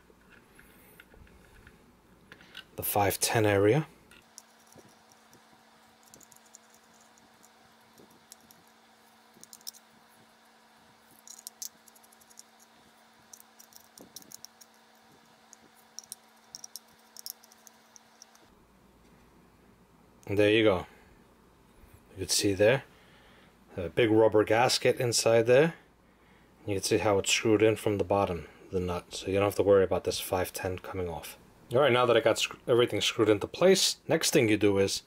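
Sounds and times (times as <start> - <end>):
small metal parts handled: 6.0 - 8.8, 9.4 - 9.9, 11.1 - 18.5.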